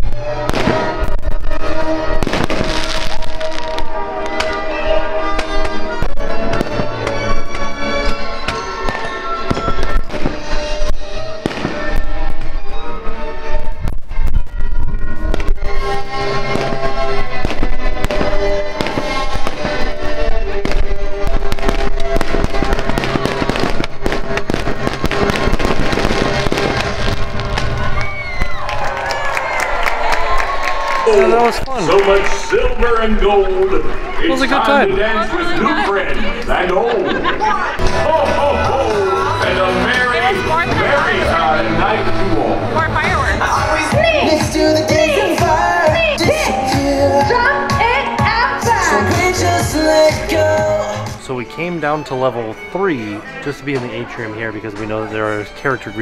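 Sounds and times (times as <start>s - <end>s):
small fireworks bursting: 0.0s - 34.8s
music playing: 0.0s - 56.0s.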